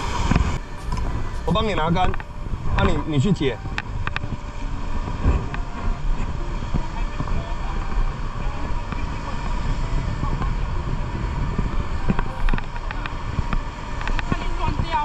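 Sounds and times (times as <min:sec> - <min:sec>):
choppy sea against harbour wall: 0:00.0 - 0:15.0
wind buffeting microphone: 0:00.0 - 0:15.0.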